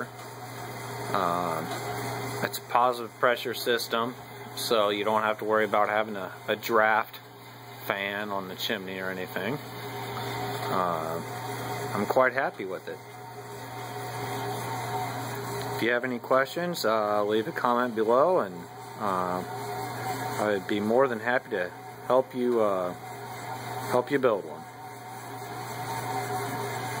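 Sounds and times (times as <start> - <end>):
oil burner fans rushing: 0.0 - 27.0.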